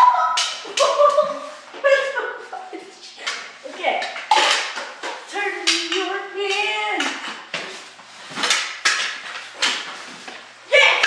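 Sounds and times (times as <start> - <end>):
sharp clatter on hard floor: 8.3 - 10.0.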